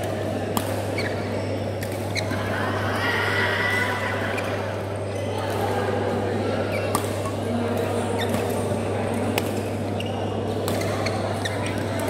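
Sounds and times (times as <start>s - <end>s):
rackets striking shuttlecocks: 0.0s - 2.3s, 6.8s - 9.9s
indoor hall noise: 0.0s - 12.0s.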